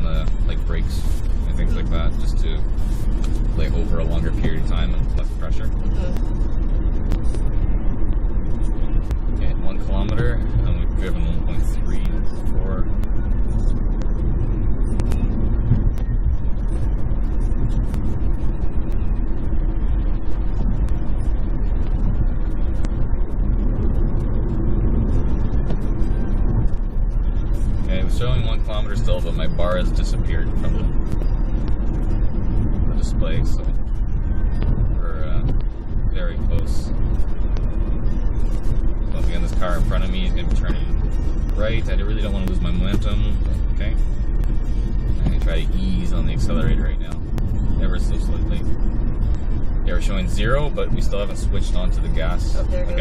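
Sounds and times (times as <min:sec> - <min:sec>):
road and tyre noise in car cabin: 0:00.0 - 0:53.0.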